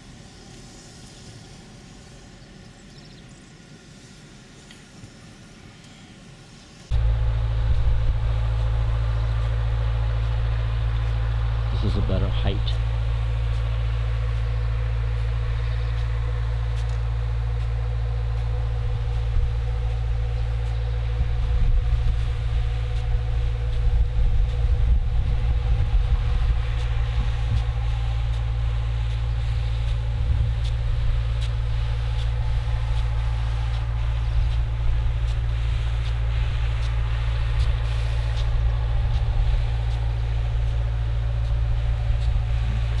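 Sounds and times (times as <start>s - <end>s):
mid-pitched engine hum: 0.0s - 43.0s
heavy low rumble: 6.9s - 43.0s.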